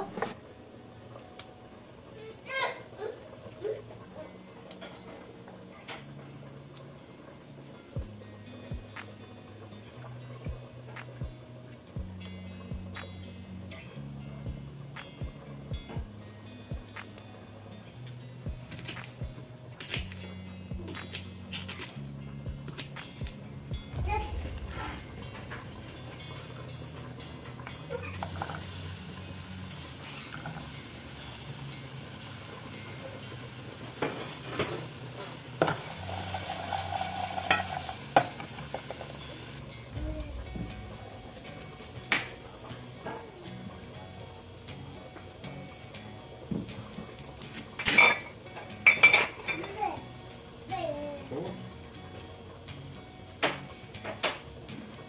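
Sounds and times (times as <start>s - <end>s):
onions sizzling in a pot: 0.0s - 55.0s.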